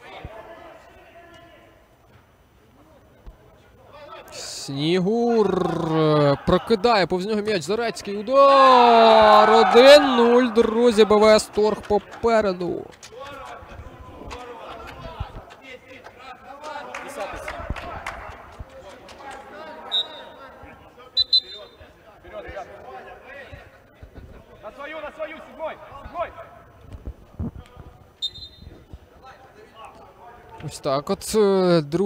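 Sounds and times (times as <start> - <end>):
players calling and talking: 0.0 - 32.0.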